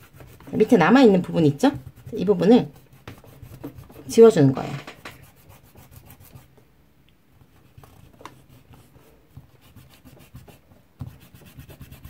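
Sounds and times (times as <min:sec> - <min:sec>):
eraser rubbing on paper: 0:00.0 - 0:06.5, 0:07.6 - 0:12.0.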